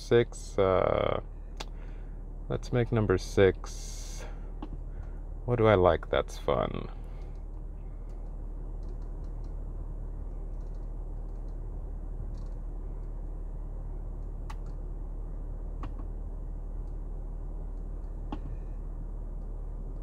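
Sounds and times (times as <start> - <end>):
car cabin hum: 0.0 - 20.0.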